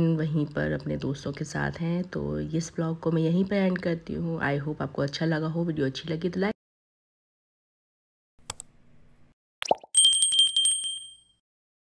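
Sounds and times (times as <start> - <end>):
mouse click: 8.4 - 8.7
small bell ringing rapidly: 9.9 - 11.4.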